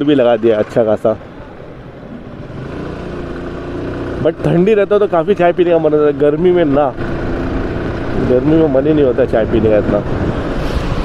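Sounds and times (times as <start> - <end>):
road noise: 0.0 - 11.0.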